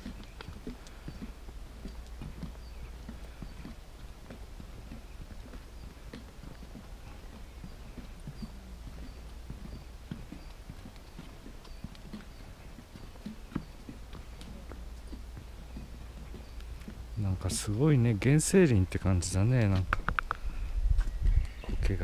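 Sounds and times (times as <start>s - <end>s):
footsteps on wooden boardwalk: 0.0s - 22.0s.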